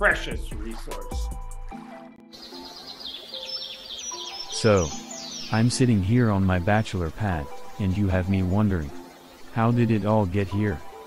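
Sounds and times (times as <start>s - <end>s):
birds chirping: 0.0s - 11.0s
soft held music: 0.0s - 11.0s.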